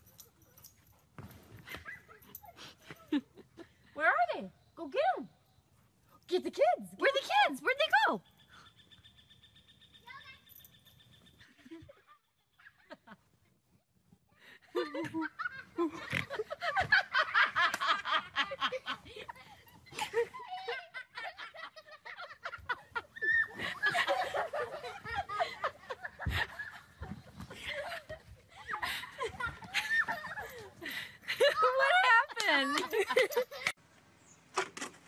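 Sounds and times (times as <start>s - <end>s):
bursts of laughing: 14.7s - 33.8s.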